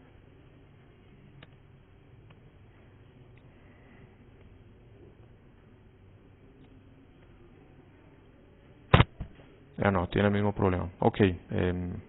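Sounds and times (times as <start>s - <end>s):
sharp loud click: 8.9s - 9.4s.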